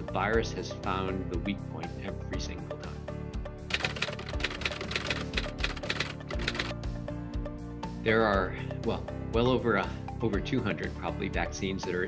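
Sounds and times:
background music: 0.0s - 12.0s
keyboard typing clicks: 3.7s - 6.7s.

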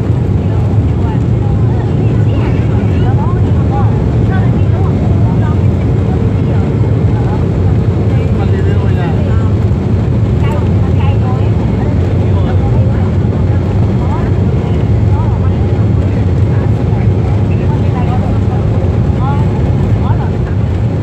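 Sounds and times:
airliner cabin rumble: 0.0s - 21.0s.

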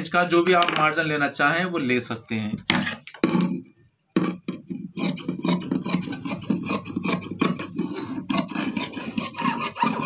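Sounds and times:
high squeaks: 5.5s - 10.0s.

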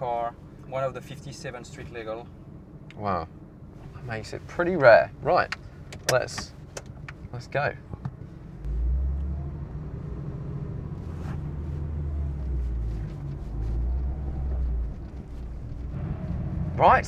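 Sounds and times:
car engine deep rumble: 0.0s - 17.0s.

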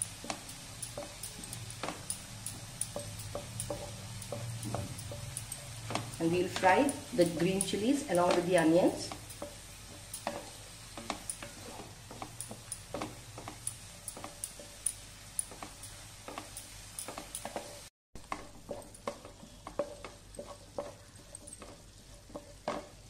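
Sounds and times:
onions sizzling in oil: 0.0s - 23.0s
spatula scraping frying pan: 15.5s - 23.0s.

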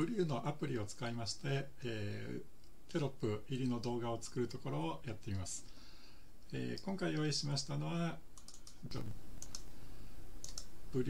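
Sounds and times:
computer mouse clicks: 8.4s - 9.7s, 10.4s - 10.7s.

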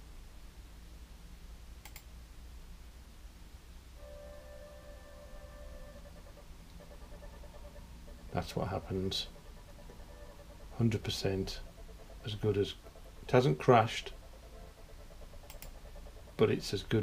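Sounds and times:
click: 1.8s - 2.1s, 15.5s - 15.7s
held synth chord: 4.0s - 15.0s.

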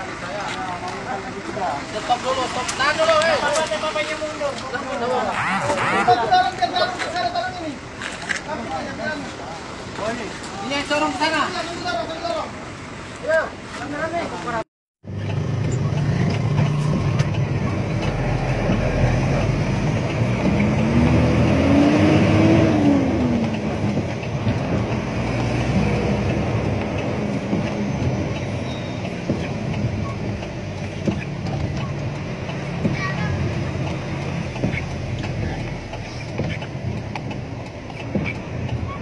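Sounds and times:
road noise: 0.0s - 39.0s
vehicle engine running: 15.0s - 39.0s.

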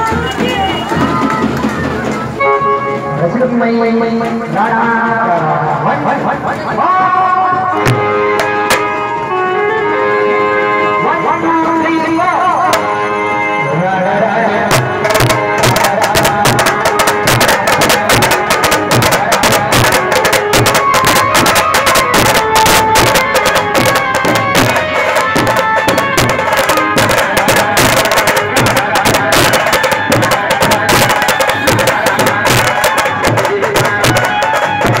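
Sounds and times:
dhol drums beaten in fast rhythm: 0.0s - 2.5s, 3.3s - 8.9s, 11.6s - 12.9s, 14.6s - 35.0s
sustained melody instrument: 0.0s - 35.0s.

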